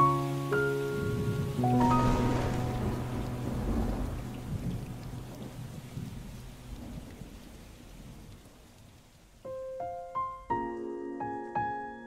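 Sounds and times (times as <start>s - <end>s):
rain: 0.0s - 11.8s
rolling thunder: 0.9s - 8.8s.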